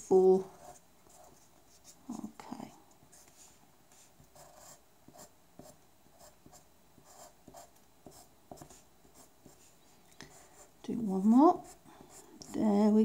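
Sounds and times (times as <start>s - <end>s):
pencil scratching on paper: 0.5s - 2.0s, 3.1s - 9.7s, 10.3s - 12.7s.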